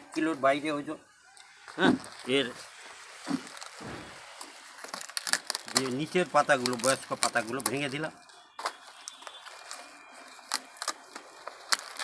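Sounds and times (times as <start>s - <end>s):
cabbage leaves snapping: 3.3s - 8.0s, 8.6s - 12.0s.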